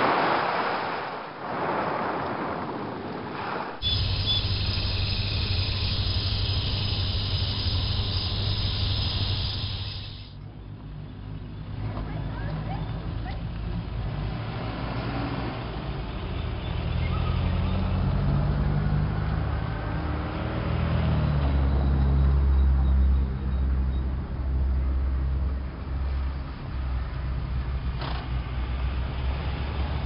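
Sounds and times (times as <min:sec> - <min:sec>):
vehicle engine drone: 0:03.8 - 0:30.0.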